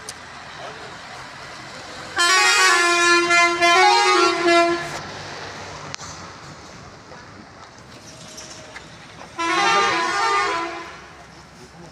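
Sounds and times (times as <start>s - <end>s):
street background noise: 0.0s - 11.9s
vehicle horn: 2.2s - 5.0s, 9.4s - 11.2s.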